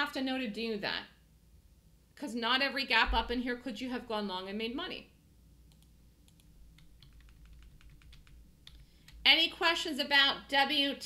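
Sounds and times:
low steady hum: 0.0s - 11.0s
faint keyboard typing: 5.6s - 9.2s.

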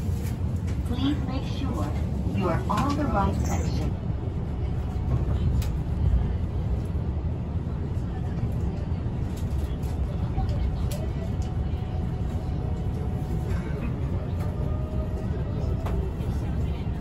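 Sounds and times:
train carriage hum: 0.0s - 17.0s.

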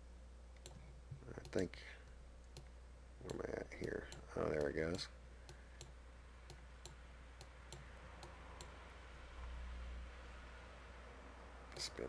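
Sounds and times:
low electrical hum: 0.0s - 12.0s
computer mouse clicks: 0.6s - 1.6s, 2.4s - 2.7s, 3.3s - 8.8s.

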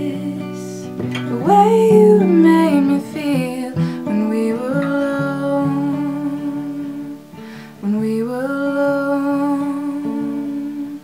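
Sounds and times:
acoustic guitar: 0.0s - 11.0s
woman singing a long note: 0.0s - 11.0s.

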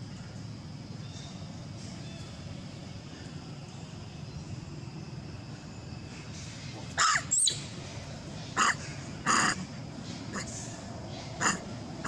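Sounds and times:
low outdoor background: 0.0s - 12.0s
crow cawing: 8.6s - 9.6s, 11.4s - 11.6s.

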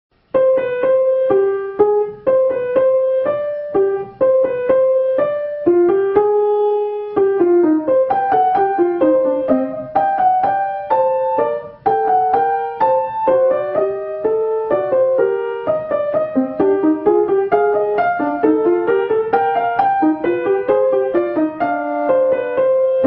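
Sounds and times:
solo grand piano: 0.1s - 23.0s.

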